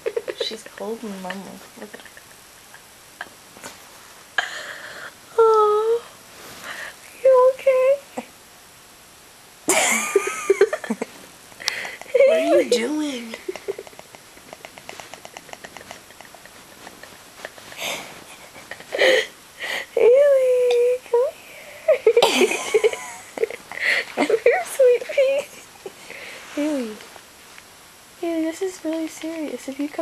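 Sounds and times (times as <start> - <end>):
room hiss: 0.0 - 30.0.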